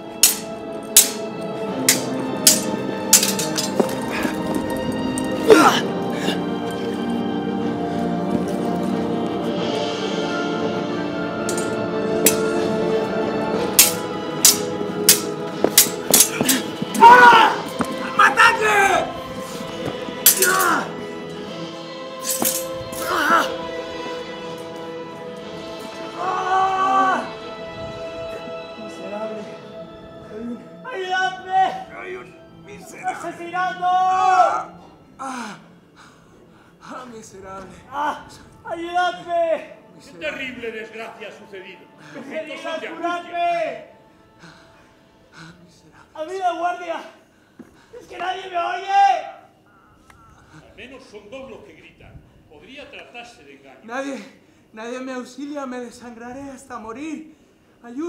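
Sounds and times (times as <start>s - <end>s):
background music: 0.0s - 58.0s
swords clashing: 0.2s - 4.3s, 11.5s - 12.6s, 13.7s - 18.0s, 20.2s - 20.9s, 22.2s - 23.4s
pained shouts and grunts: 5.4s - 6.4s, 16.1s - 19.2s, 20.2s - 21.0s, 23.0s - 23.6s, 26.1s - 27.4s
man moaning in pain: 5.4s - 6.5s, 23.0s - 23.6s
faint breaths: 54.3s - 54.8s, 57.3s - 57.8s.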